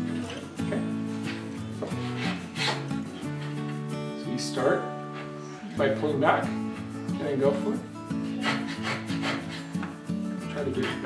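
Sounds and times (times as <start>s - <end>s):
background music: 0.0s - 11.0s
coping saw rasping through wood: 1.3s - 3.6s, 8.3s - 9.8s, 10.7s - 11.0s.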